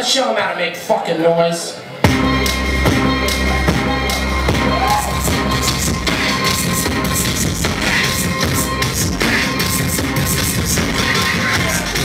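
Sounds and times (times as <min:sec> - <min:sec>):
electronic music with deep bass: 0:02.0 - 0:12.0.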